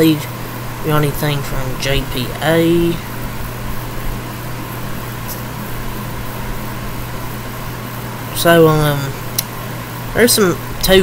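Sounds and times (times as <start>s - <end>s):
even hiss: 0.0s - 11.0s
low hum: 0.0s - 11.0s.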